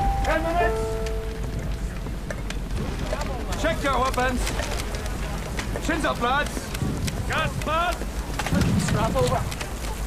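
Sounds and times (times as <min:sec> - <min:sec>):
held music note: 0:00.0 - 0:01.8
steady rain: 0:00.0 - 0:10.0.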